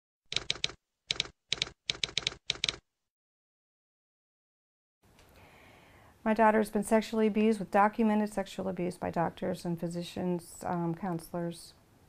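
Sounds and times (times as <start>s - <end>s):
typewriter keystrokes: 0.3s - 2.8s.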